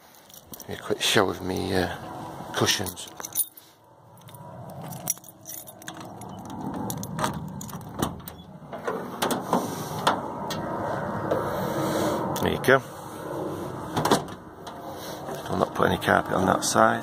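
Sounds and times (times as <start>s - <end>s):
keys jangling: 0.1s - 0.8s, 3.0s - 8.0s.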